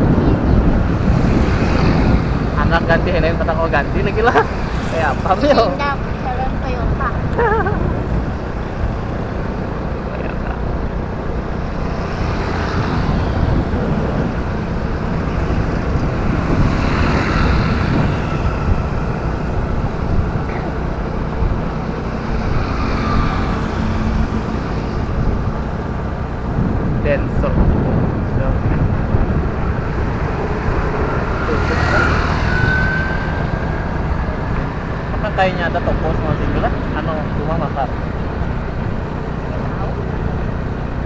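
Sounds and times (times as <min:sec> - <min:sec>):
motorbikes passing: 0:00.0 - 0:41.0
motorcycle engine: 0:00.0 - 0:41.0
wind rushing over microphone: 0:00.0 - 0:41.0.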